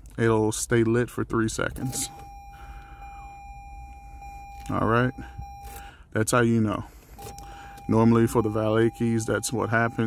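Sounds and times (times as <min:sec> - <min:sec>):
steady electronic reminder tone: 0:07.2 - 0:10.0.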